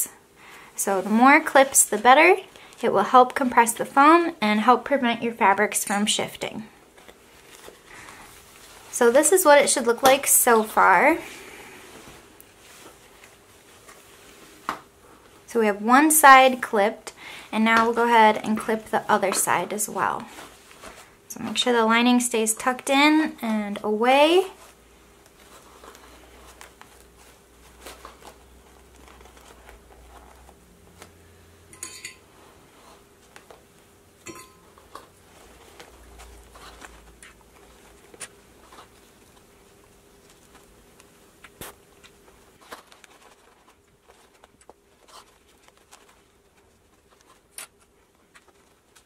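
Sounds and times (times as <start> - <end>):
fabric and foam rustling: 0.0 - 31.5, 32.2 - 49.0.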